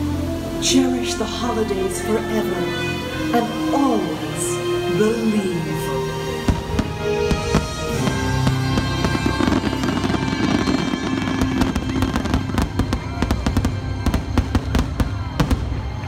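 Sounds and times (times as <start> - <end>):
show music sustained chord: 0.0 - 16.0.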